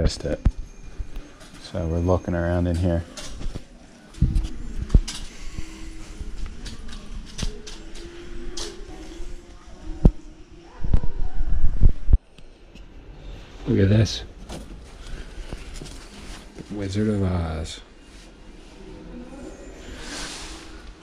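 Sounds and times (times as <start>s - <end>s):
faint voices: 0.0s - 12.3s.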